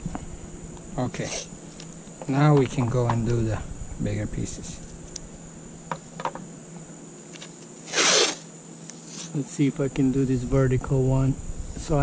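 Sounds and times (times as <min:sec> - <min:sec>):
masking tape ripped off roll: 0:07.8 - 0:08.5.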